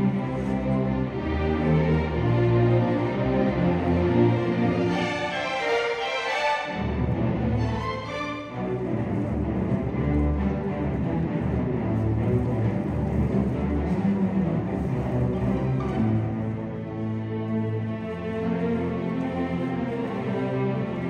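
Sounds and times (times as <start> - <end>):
cellos and basses: 0.0 - 21.0
violins and violas: 0.0 - 21.0.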